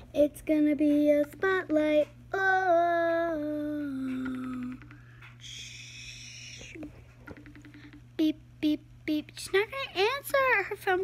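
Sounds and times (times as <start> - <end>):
girl humming: 3.0 - 7.1.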